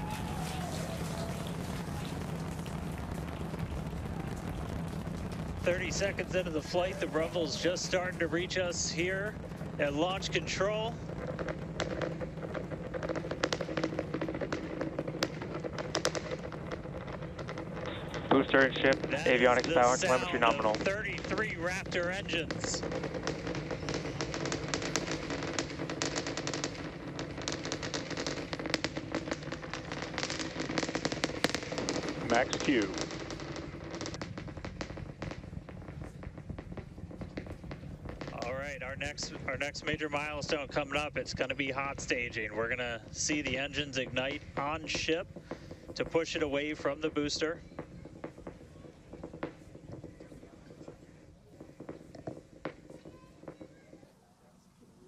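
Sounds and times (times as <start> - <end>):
crackle of rocket engines: 0.0 - 55.0
rocket engines rumbling: 0.0 - 55.0.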